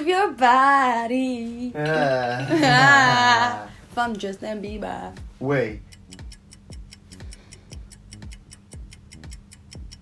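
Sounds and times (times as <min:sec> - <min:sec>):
steady low hum: 0:00.0 - 0:10.0
rapid clock-like ticking: 0:05.2 - 0:10.0.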